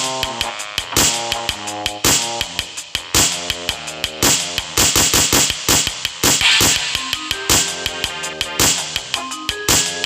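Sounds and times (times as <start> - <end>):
fast synthesized drum pattern: 0.0 - 10.0
short synth notes: 6.4 - 8.6.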